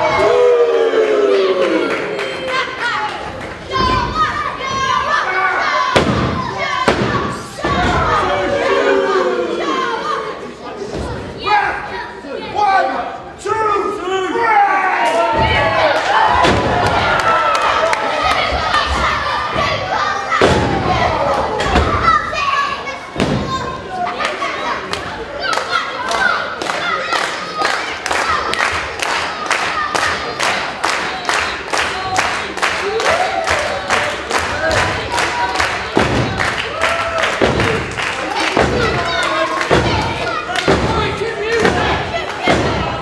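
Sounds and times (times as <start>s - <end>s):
crowd shouting: 0.0s - 3.0s, 3.7s - 10.6s.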